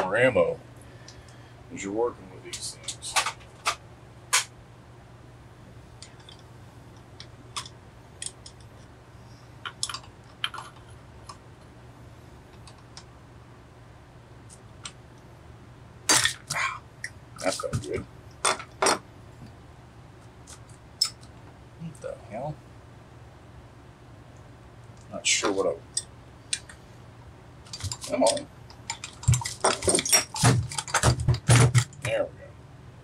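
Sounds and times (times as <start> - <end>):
steady low hum: 0.0 - 33.0
metal tools clinking: 27.7 - 31.1.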